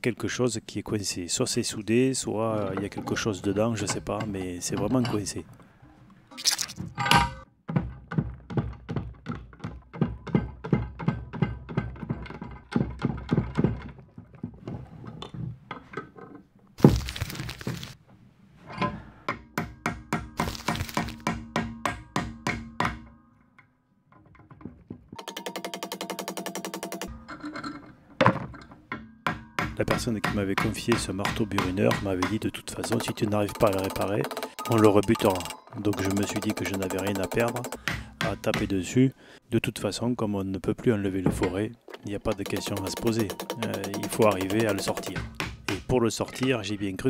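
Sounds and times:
hammer tapping on metal: 21.2 - 23.2, 28.9 - 38.8, 42.3 - 45.9.

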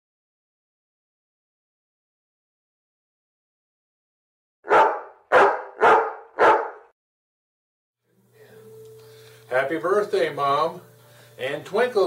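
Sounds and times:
dog barking: 4.6 - 6.9.

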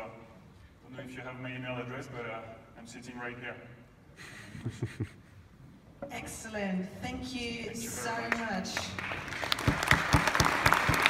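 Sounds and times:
audience applause: 8.8 - 11.0
loud close hand claps: 8.8 - 11.0.

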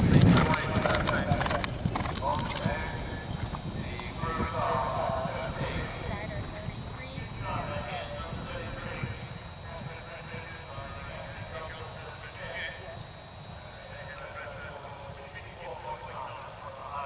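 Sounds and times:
horse hoofbeats on grass: 0.0 - 15.9.

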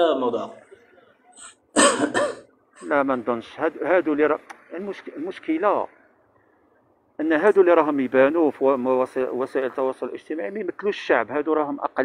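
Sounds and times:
man speaking: 0.0 - 1.0, 2.8 - 6.0, 7.2 - 12.0
man clearing his throat: 1.4 - 2.5.

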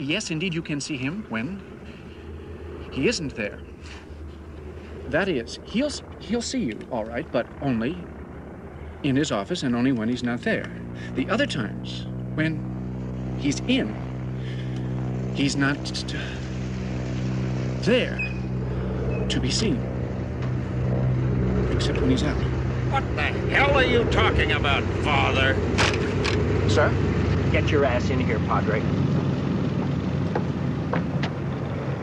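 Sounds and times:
engine drone: 0.0 - 32.0.

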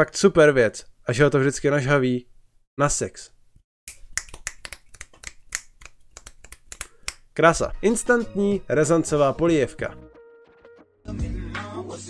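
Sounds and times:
fingers snapping: 3.9 - 7.3.

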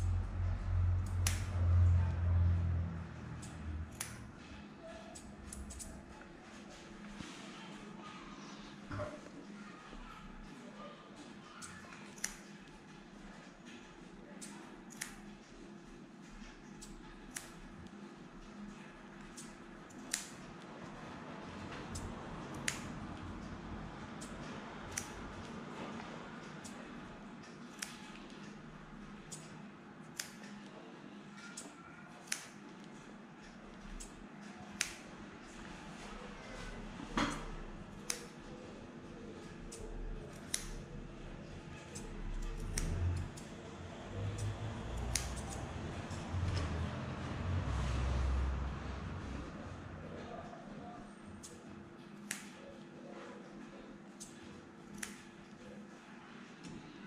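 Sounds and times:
scissors snipping: 1.0 - 1.9, 3.3 - 4.3, 5.1 - 6.1, 11.5 - 12.5, 14.4 - 15.3, 16.7 - 17.7, 19.2 - 20.4, 21.8 - 23.2, 24.2 - 25.6, 27.4 - 28.6, 30.1 - 30.7, 31.4 - 32.6, 33.9 - 35.1, 37.3 - 38.4, 39.6 - 40.9, 41.9 - 43.6, 44.2 - 46.8, 52.2 - 52.6, 54.2 - 55.6.

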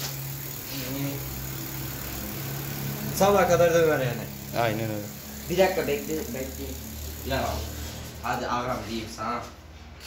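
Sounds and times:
motor humming: 0.0 - 8.6.

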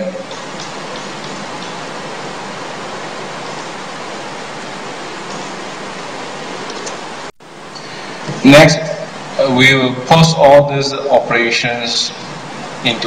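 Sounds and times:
microphone background hiss: 0.0 - 13.0.

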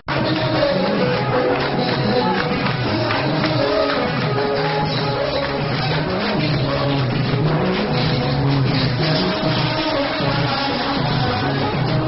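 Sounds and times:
loud live band music: 0.0 - 12.0
stepping bass line: 0.0 - 12.0.

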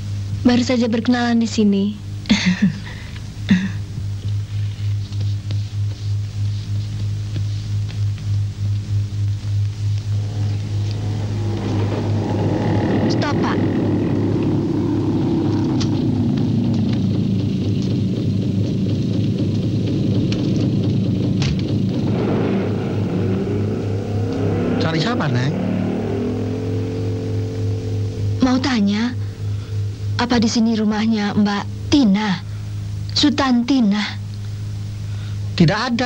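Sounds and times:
steady low hum: 0.0 - 36.0
film music: 10.0 - 33.0
auto rickshaw engine rattling: 10.2 - 21.0.

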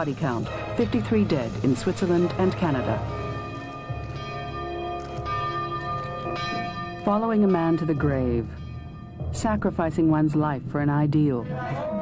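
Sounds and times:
church bells tolling: 0.3 - 10.7.

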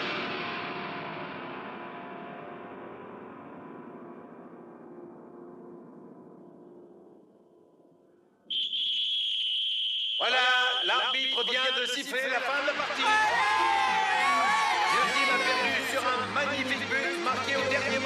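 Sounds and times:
referee whistle held long: 8.5 - 12.1.

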